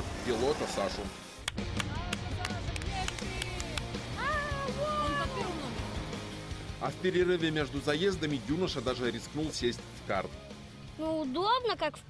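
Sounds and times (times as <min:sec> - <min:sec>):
quick sharp hand claps: 0:01.4 - 0:04.0.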